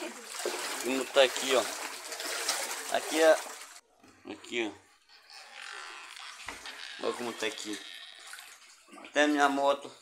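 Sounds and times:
water sloshing while wading: 0.0s - 3.8s, 6.3s - 9.3s.

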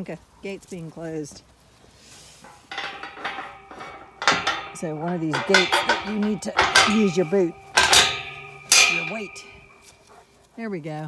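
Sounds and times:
metal gate clanking and rattling: 2.4s - 10.0s.

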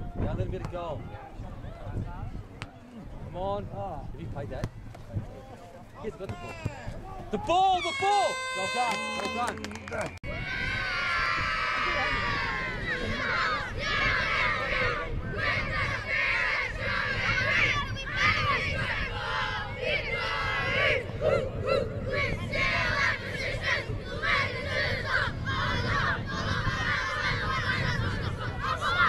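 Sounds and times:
boys chanting in unison: 11.9s - 29.0s.

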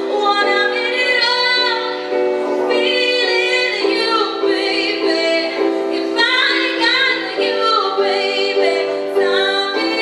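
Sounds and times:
young woman singing slow song: 0.0s - 2.1s, 2.7s - 10.0s.

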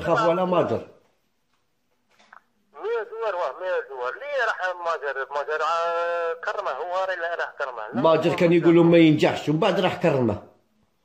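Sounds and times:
man speaking loudly: 0.0s - 1.0s, 2.8s - 10.5s.

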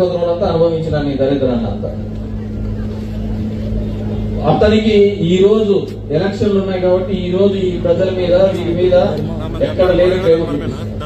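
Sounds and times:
steady low engine-like hum: 1.5s - 11.0s.

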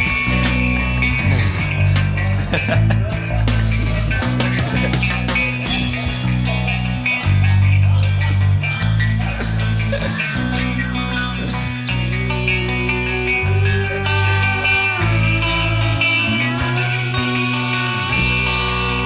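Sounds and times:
bass guitar notes: 0.0s - 19.0s
psychedelic rock guitars: 0.0s - 19.0s.

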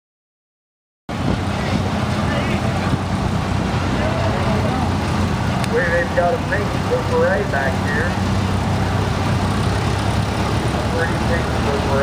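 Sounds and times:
tractor engines driving past: 1.1s - 12.0s
faint voices: 1.4s - 9.3s, 10.3s - 12.0s.

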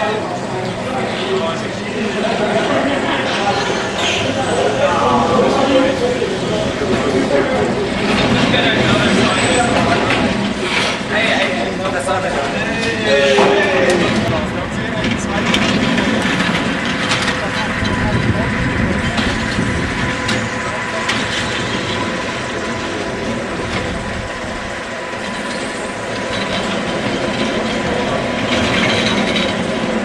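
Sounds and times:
people's voices: 0.0s - 30.0s
roller coaster rumbling on track: 0.0s - 30.0s.

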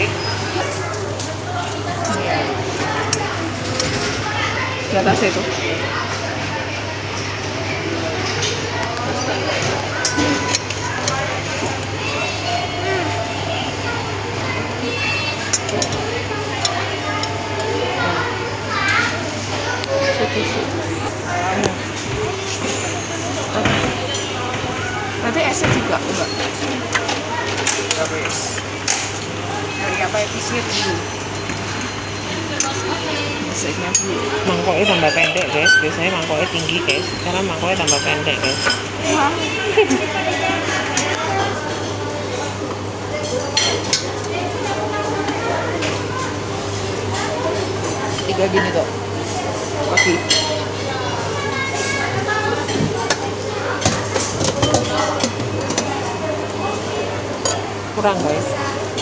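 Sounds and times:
indistinct chatter: 0.0s - 59.0s
metal utensils clinking on steel bowls: 30.1s - 41.9s, 47.2s - 50.6s, 52.6s - 56.0s.

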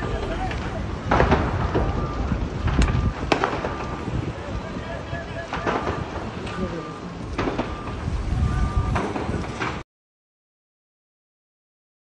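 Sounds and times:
sharp cracks: 0.0s - 4.1s, 5.4s - 6.6s, 7.3s - 8.0s
distant voices: 0.0s - 9.8s
low rumble: 0.0s - 9.8s.

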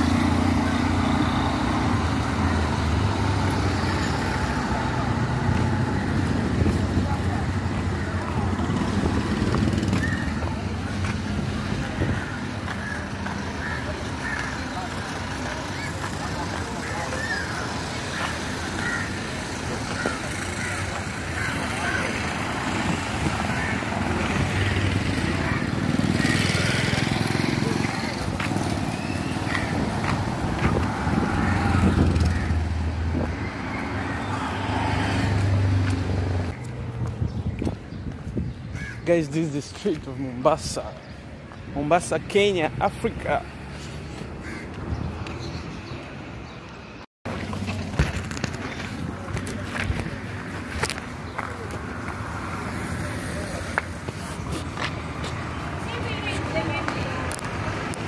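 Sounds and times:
small vehicle engines running: 0.0s - 37.0s.

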